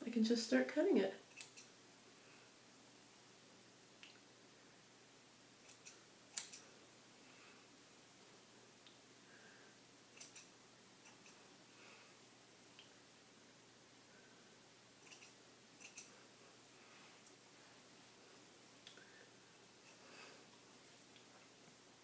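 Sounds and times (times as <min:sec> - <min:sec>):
scissors snipping hair: 0:01.3 - 0:01.7, 0:05.6 - 0:06.6, 0:10.1 - 0:11.4, 0:15.0 - 0:16.1.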